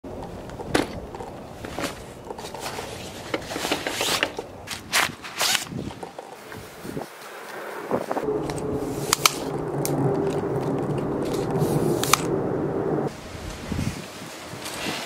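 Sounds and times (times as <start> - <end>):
backpack fabric rustling: 1.6 - 6.9.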